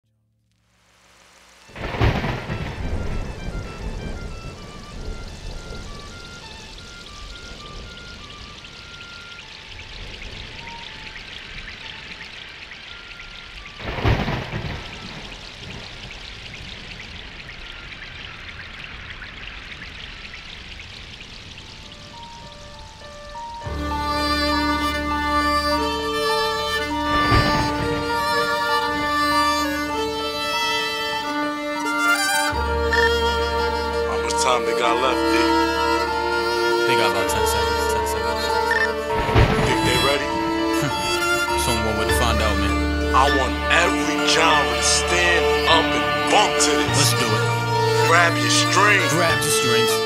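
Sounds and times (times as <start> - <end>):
steady rain: 0.6 - 50.0
thunderclaps: 1.7 - 25.0, 25.8 - 31.8, 33.9 - 48.6
sparse high note melody: 22.2 - 50.0.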